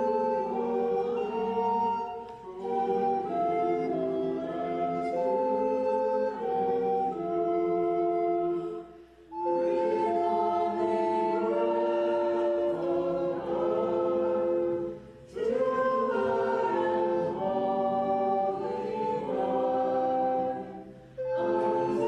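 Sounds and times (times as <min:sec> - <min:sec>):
group singing a hymn: 0:00.0 - 0:22.0.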